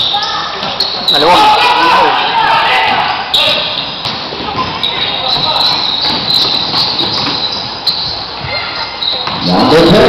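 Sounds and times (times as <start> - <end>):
faint court noise: 0.0 - 10.0.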